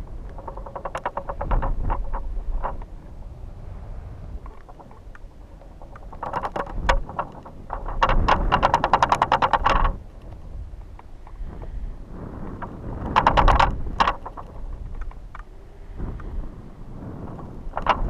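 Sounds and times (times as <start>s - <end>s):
rapid fluttering rattle: 0.0s - 3.2s, 4.2s - 18.0s
wind buffeting: 0.0s - 18.0s.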